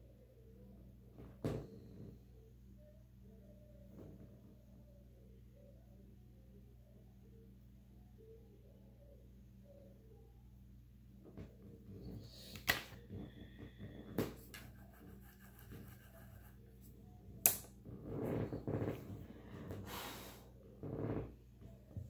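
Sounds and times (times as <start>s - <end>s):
faint low hum: 0.0s - 22.0s
breaths: 12.2s - 14.3s, 19.2s - 20.6s.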